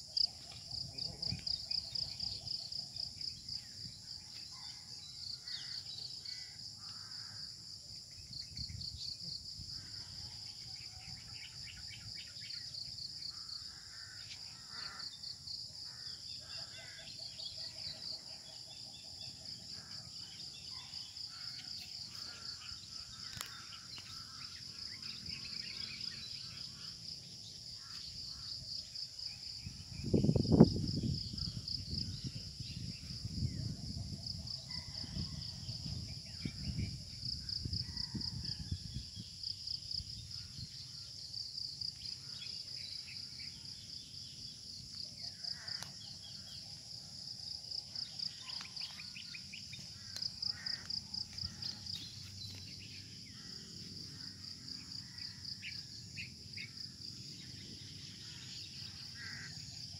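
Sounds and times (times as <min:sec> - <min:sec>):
insects trilling: 0:00.0 - 0:59.9.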